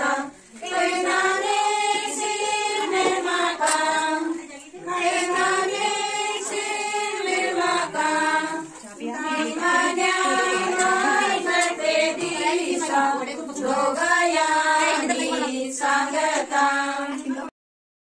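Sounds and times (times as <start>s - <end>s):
women singing together: 0.0s - 17.5s.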